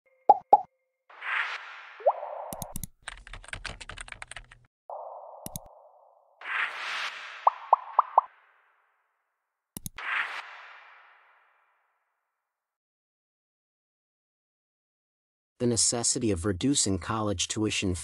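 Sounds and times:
mouse clicks: 2.5s - 2.9s, 5.4s - 5.7s, 9.8s - 10.0s
keyboard typing clicks: 2.5s - 4.6s, 5.4s - 5.7s, 9.8s - 10.0s
rising pops: 6.4s - 8.3s.

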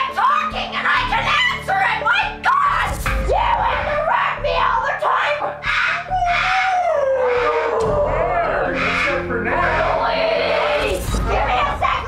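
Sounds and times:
howling cry sliding down: 6.0s - 9.0s.

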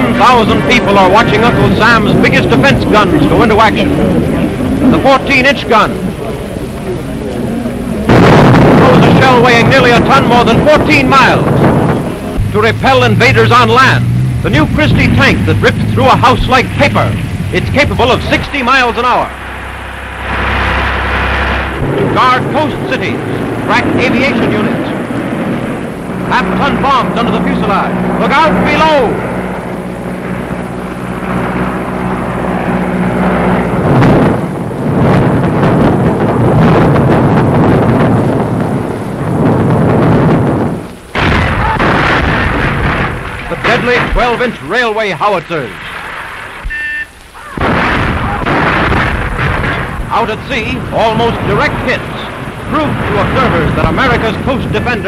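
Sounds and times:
howitzer blast: 0.0s - 55.0s
low hum: 0.0s - 55.0s
tank engine and tracks rumbling: 0.0s - 55.0s.

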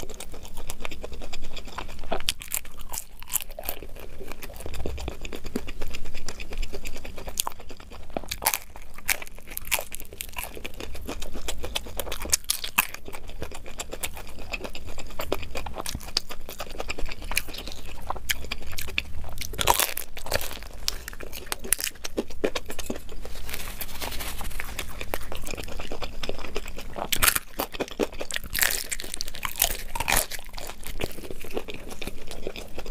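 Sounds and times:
crunching and chewing pastry: 0.0s - 32.9s.

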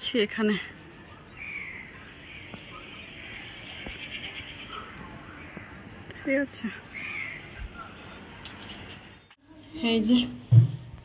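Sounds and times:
faint bird calls: 6.9s - 8.1s.

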